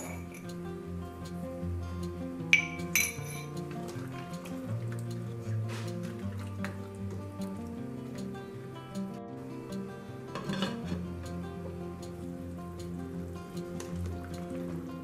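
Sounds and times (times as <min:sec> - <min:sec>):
spoon clinking against metal pot: 0:00.0 - 0:00.6, 0:02.5 - 0:04.5, 0:10.3 - 0:11.0
background music: 0:00.0 - 0:15.0.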